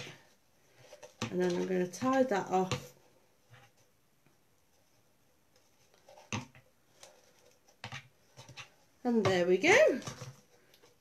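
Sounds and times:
handling knocks and rustles: 0:04.8 - 0:11.0.

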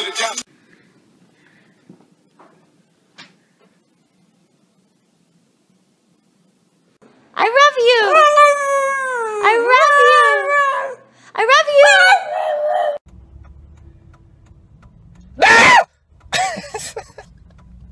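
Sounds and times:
dog howling: 0:08.0 - 0:11.0, 0:11.7 - 0:13.0
car interior rumble: 0:13.1 - 0:17.9
loud short cry: 0:15.4 - 0:15.9.

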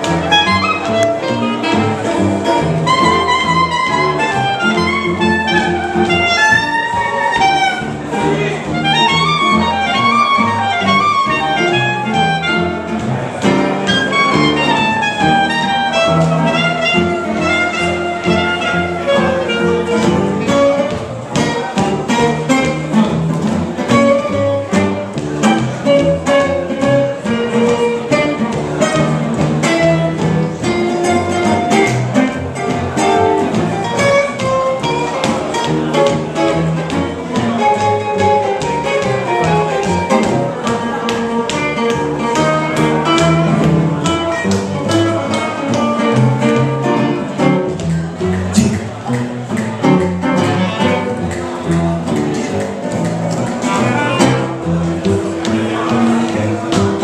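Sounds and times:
clarinet melody: 0:00.0 - 0:51.6, 0:53.3 - 0:55.8
plucked string notes: 0:00.0 - 0:57.0
strummed acoustic guitar: 0:00.0 - 0:57.0
upright bass walking line: 0:00.0 - 0:57.0.

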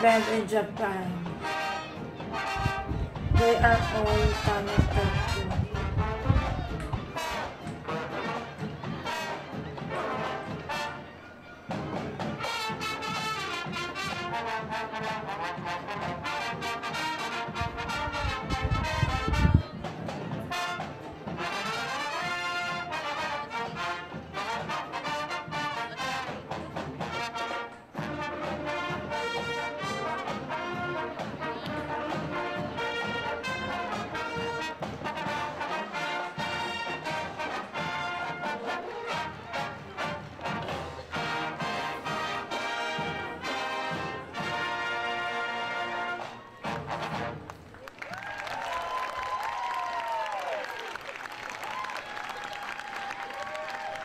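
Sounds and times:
crowd noise: 0:00.0 - 0:54.0
marching band playing: 0:00.0 - 0:54.0.

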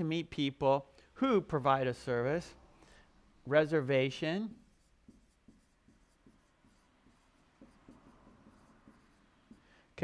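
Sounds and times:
marker writing on a whiteboard: 0:03.7 - 0:10.0.

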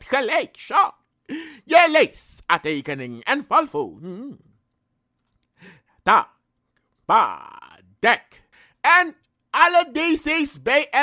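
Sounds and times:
man speaking: 0:00.0 - 0:04.6, 0:06.0 - 0:06.4, 0:07.0 - 0:11.0.

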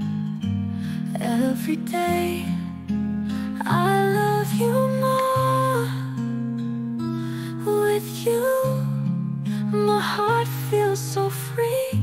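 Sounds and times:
pop ballad music: 0:00.0 - 0:12.0.

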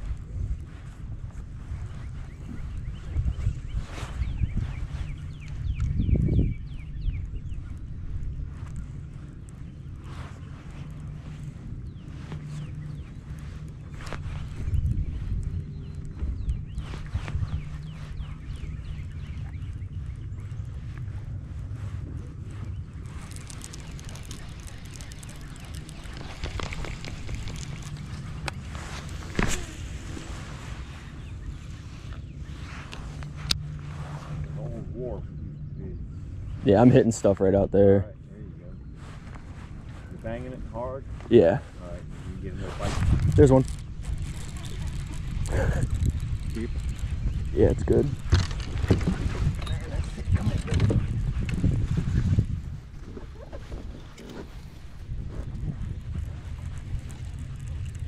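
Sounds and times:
low steady hum: 0:00.0 - 0:58.0
wind on microphone: 0:00.0 - 0:58.0.

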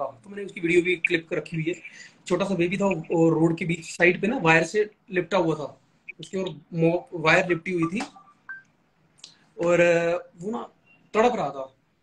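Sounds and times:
man speaking: 0:00.0 - 0:08.4.

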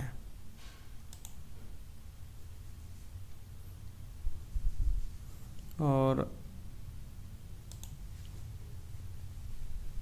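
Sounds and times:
low steady hum: 0:00.0 - 0:10.0
computer mouse clicking: 0:01.1 - 0:01.5, 0:07.6 - 0:08.4.

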